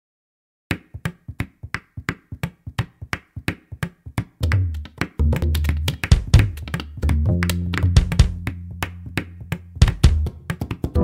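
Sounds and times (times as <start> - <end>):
programmed drum beat: 4.4 - 11.0.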